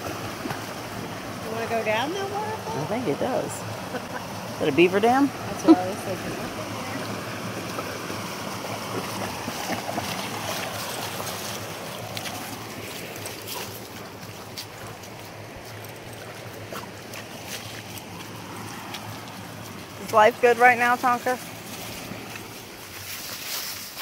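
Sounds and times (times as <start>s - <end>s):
creek water over rocks: 0.0s - 24.0s
dog splashing through water: 5.3s - 24.0s.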